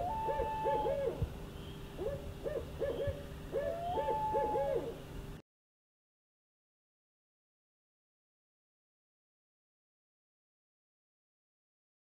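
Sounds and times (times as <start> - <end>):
owl hooting: 0.0 - 5.0.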